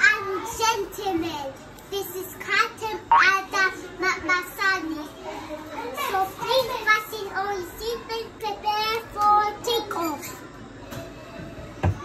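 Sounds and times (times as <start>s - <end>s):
child sing-song chanting: 0.0s - 5.4s, 6.0s - 10.3s.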